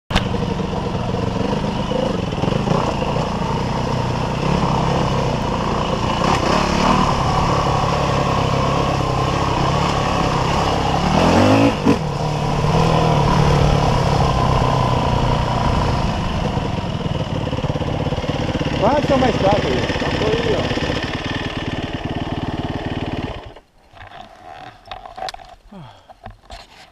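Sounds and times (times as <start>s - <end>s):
dirt bike engine revving: 0.1s - 23.7s.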